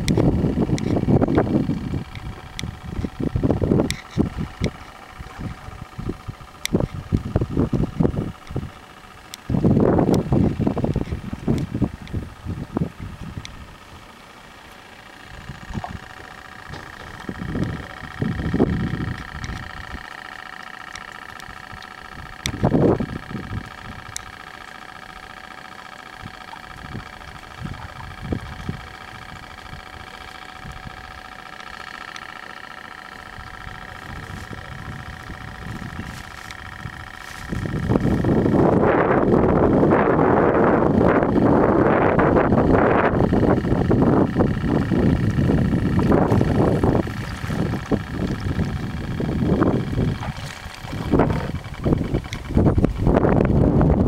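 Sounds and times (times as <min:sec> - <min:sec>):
wind buffeting microphone: 0:00.0 - 0:08.8, 0:09.4 - 0:14.0, 0:15.1 - 0:20.5, 0:21.1 - 0:24.4, 0:26.2 - 0:31.2, 0:33.3 - 0:54.0
steady background hum: 0:00.0 - 0:54.0.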